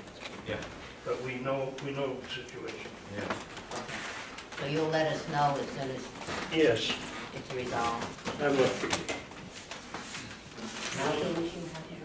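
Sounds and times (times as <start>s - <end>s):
paper rustling: 1.9s - 11.9s.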